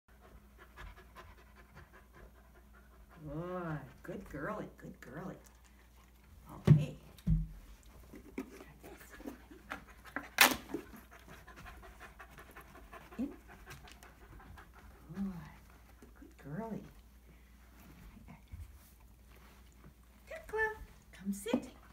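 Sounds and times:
puppy panting: 0.1s - 4.4s, 5.1s - 6.5s, 7.7s - 21.1s.

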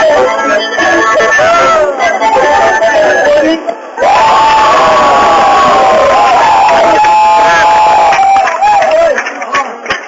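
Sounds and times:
audience cheering and whooping: 4.0s - 9.2s.

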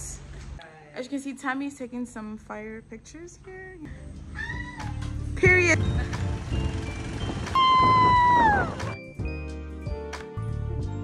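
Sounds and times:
woman squealing: 4.3s - 5.0s, 7.6s - 9.0s.

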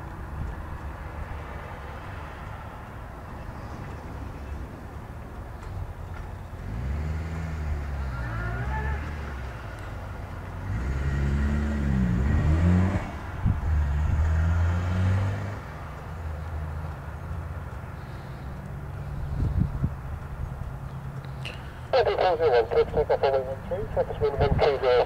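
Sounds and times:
twin piston aircraft engines: 0.0s - 12.4s, 13.1s - 25.0s.

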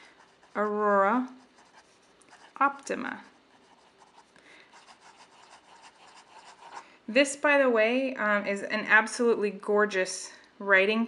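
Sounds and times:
fountain pen scratching on paper: 0.0s - 6.8s.

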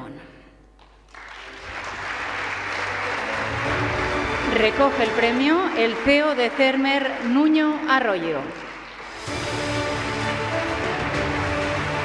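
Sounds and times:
audience applauding: 0.9s - 12.0s.

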